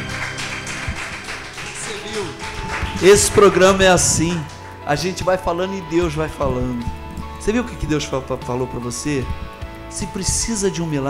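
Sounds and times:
worship song accompaniment: 0:00.0 - 0:11.0.

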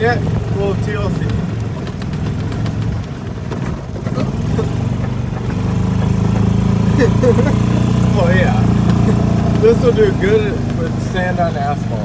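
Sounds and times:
cart body rattling and clicking: 0:00.0 - 0:12.0
golf cart engine running: 0:00.0 - 0:12.0.

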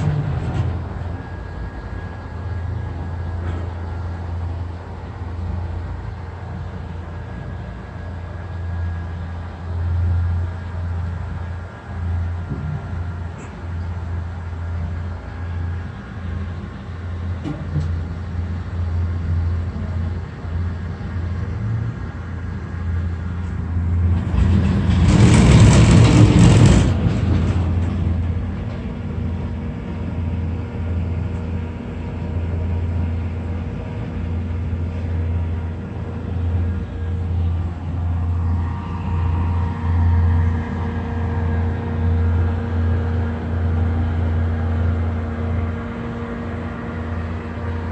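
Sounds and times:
cable car cabin rumble: 0:00.0 - 0:47.9.

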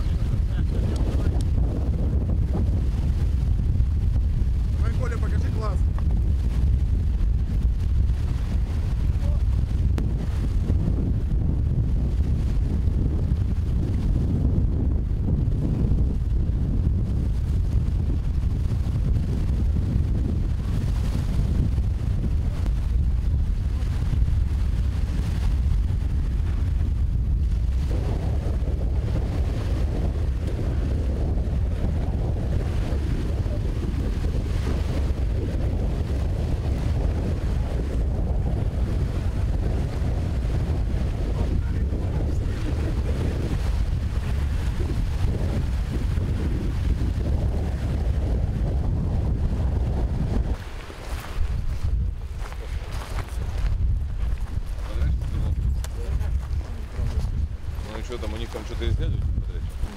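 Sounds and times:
choppy lake water: 0:00.0 - 0:59.9
wind buffeting microphone: 0:00.0 - 0:59.9.

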